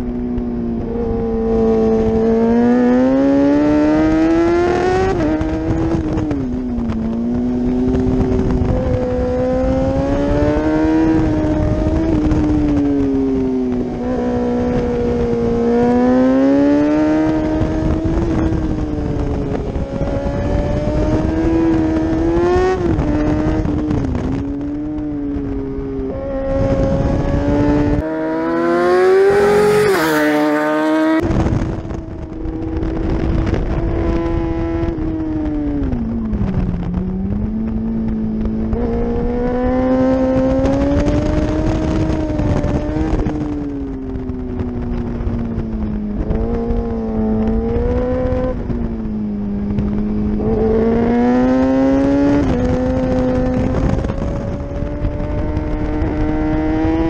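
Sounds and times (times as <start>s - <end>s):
motorcycle engine at high revs: 0.0s - 57.0s
motorcycle passing by: 0.0s - 57.0s
wind rush: 0.0s - 57.0s.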